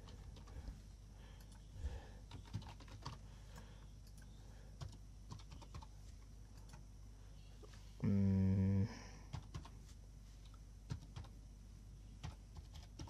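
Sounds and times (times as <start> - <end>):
keyboard typing: 0.0 - 0.6, 1.4 - 6.8, 9.3 - 9.8, 10.4 - 11.4, 12.2 - 13.0.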